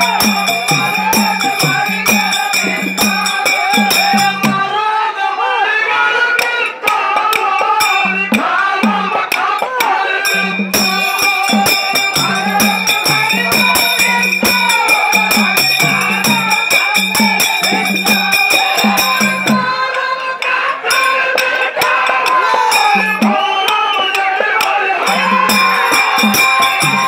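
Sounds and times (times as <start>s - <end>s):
jingling metal percussion: 0.0s - 4.8s, 6.4s - 27.0s
pitched drum: 0.0s - 4.8s, 6.4s - 27.0s
people singing: 0.0s - 27.0s.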